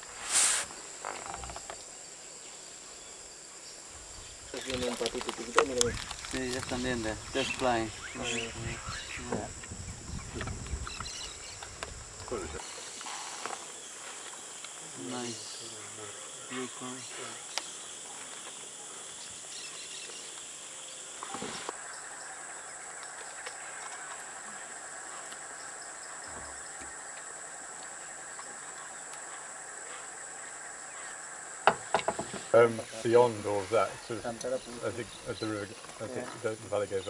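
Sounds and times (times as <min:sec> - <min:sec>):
insects droning: 0:00.0 - 0:37.0.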